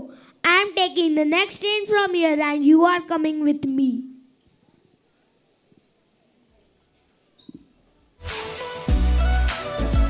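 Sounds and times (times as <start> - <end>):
child's amplified voice: 0.0 - 4.3
faint background hiss: 0.0 - 9.8.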